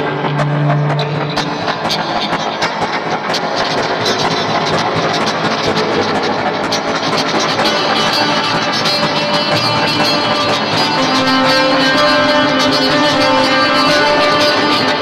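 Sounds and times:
two guitars playing: 0.0 - 15.0.

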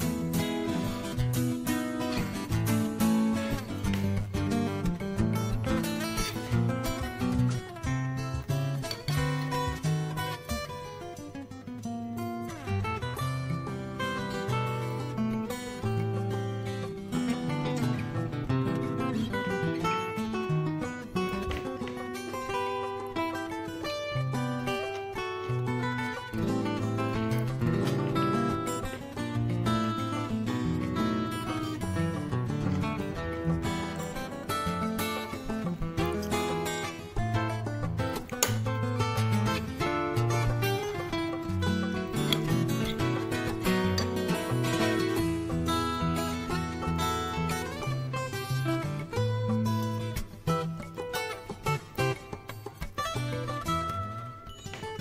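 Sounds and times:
plucked acoustic guitar music: 0.0 - 55.0.

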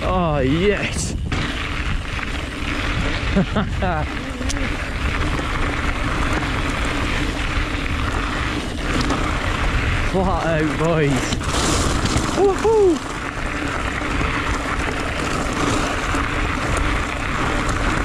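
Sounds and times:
bike tyres rolling on gravel: 0.0 - 18.0
wind on microphone: 0.0 - 18.0.

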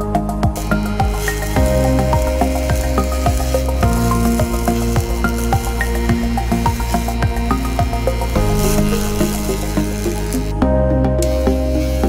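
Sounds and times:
held synth chords: 0.0 - 12.0
steady ticking beat: 0.3 - 10.6.

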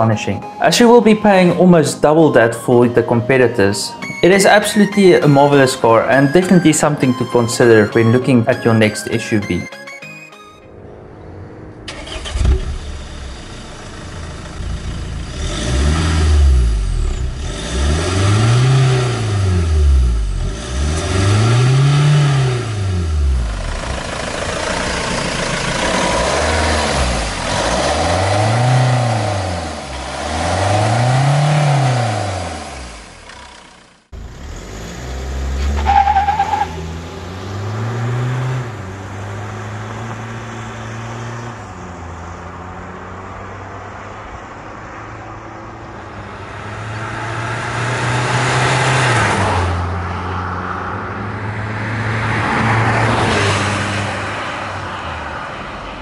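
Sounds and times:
diesel engine revving: 11.5 - 56.0.

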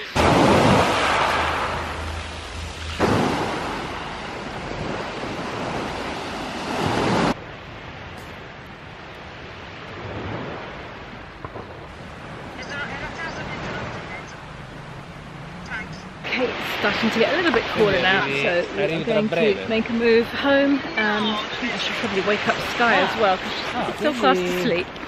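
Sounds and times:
waves washing up pebble beach: 0.0 - 7.4, 15.7 - 18.8.

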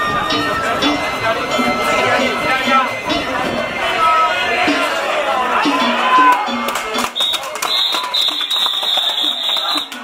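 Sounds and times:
people shouting: 2.0 - 10.0
shrill whistle blasts: 7.2 - 10.0.

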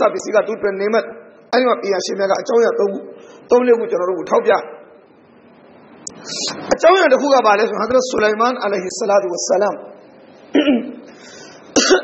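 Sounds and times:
man coughing: 10.5 - 11.1, 11.7 - 12.0.

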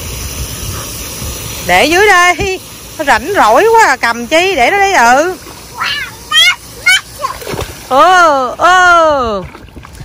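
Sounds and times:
water splashing in a pool: 0.0 - 10.0
high-pitched child's voice: 5.7 - 7.6.

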